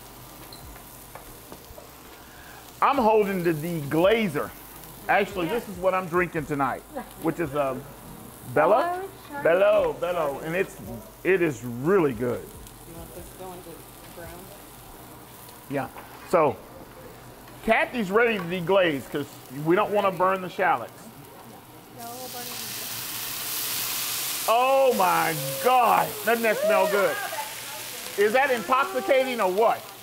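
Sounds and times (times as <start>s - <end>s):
shallots sizzling in oil: 0.0s - 30.0s.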